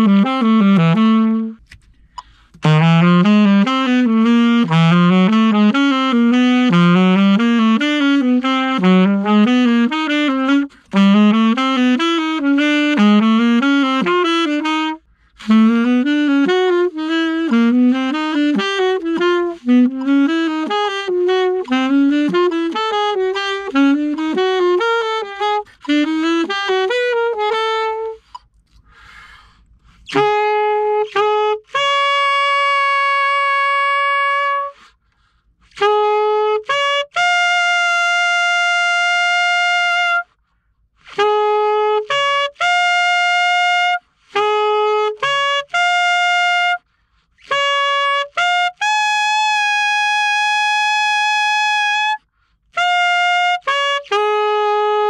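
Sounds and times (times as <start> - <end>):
saxophone held notes: 0.0 - 28.6, 29.8 - 40.3, 41.0 - 55.0.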